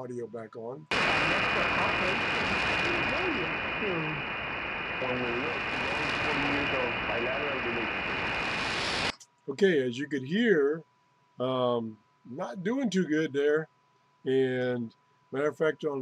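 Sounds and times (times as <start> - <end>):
faint voice on radio: 0.0 - 4.2, 5.0 - 8.0, 9.5 - 10.8, 11.4 - 13.6, 14.3 - 16.0
radio hiss and static: 0.0 - 10.8, 11.4 - 13.6, 14.3 - 16.0
steady high whistle: 5.0 - 8.0.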